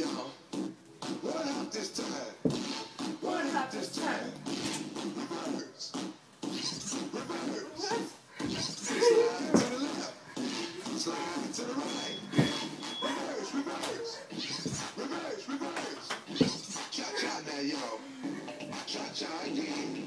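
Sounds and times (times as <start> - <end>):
sharp thumps: 2.4 - 3.1, 12.3 - 12.9
people talking: 7.1 - 10.2.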